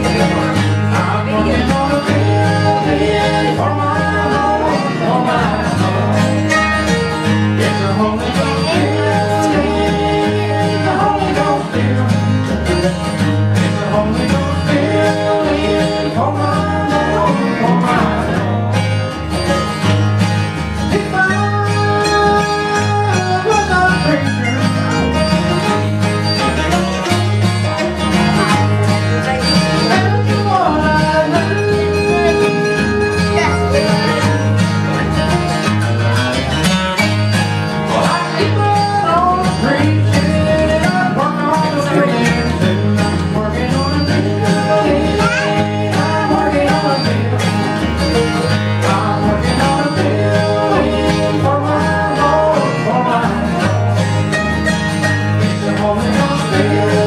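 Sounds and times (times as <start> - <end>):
acoustic guitars and mandolin playing: 0.0 - 57.0.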